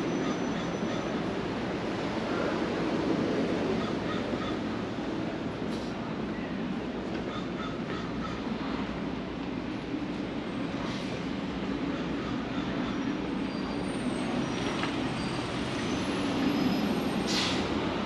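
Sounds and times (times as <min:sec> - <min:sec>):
street traffic noise: 0:00.0 - 0:18.0.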